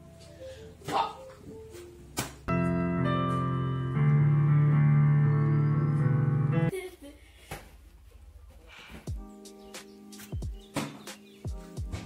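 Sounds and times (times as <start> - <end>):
digital piano chords: 0.0 - 6.7, 9.1 - 12.0.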